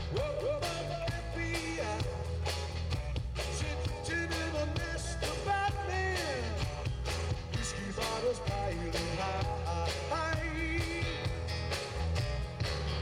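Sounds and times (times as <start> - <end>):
man singing lead: 0.0 - 2.6, 3.4 - 11.6
rock band playing: 0.0 - 13.0.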